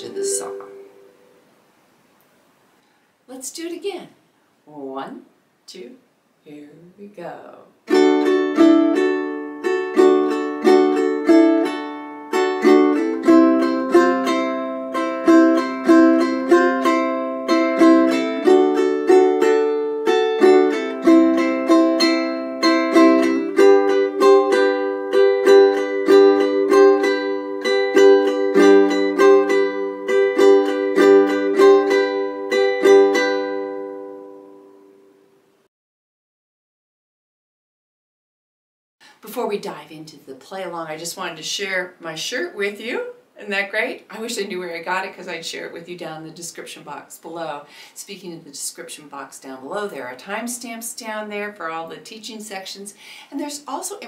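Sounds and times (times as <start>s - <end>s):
ukulele strumming: 0.0s - 1.4s, 7.9s - 35.3s.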